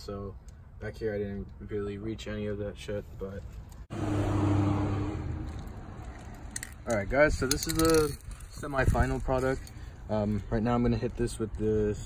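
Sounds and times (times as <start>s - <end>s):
vehicle engine hum: 3.7s - 7.1s.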